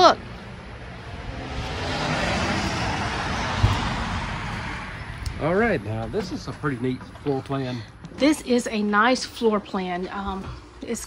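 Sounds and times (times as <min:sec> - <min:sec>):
vehicle passing on road: 0:00.0 - 0:09.0
low thump: 0:03.0 - 0:05.4.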